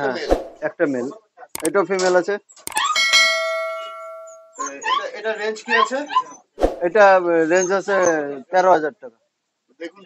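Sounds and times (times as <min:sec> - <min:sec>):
bell-like ding: 0:02.7 - 0:04.7.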